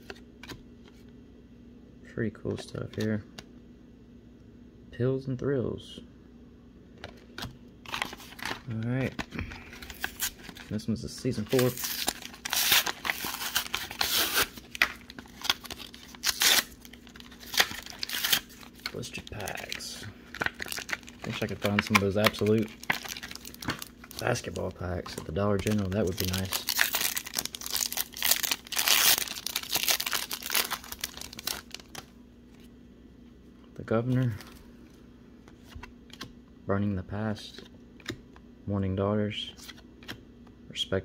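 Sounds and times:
plastic packaging tearing: 0:07.9 - 0:10.8, 0:11.4 - 0:32.0
plastic wrapping crinkling: 0:07.9 - 0:32.1.

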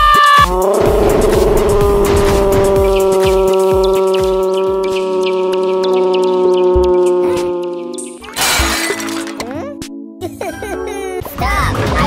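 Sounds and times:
background music: 0:00.0 - 0:12.0
glass shattering crash: 0:08.3 - 0:09.6.

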